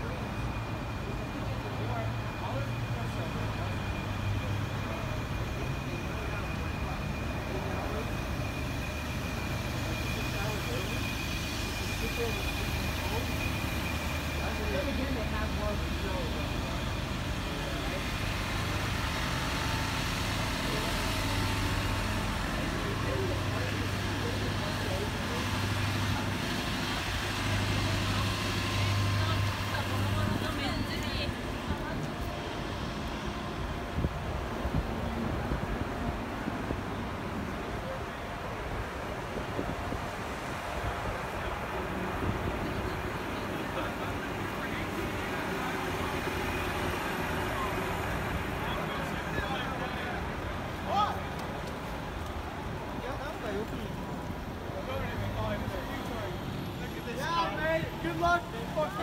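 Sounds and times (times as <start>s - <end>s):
idling bus engines: 0.0s - 59.0s
passersby talking: 0.0s - 59.0s.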